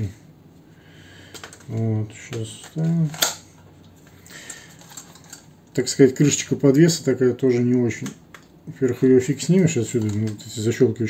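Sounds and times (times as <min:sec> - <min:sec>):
handling rustle: 0:01.4 - 0:05.9.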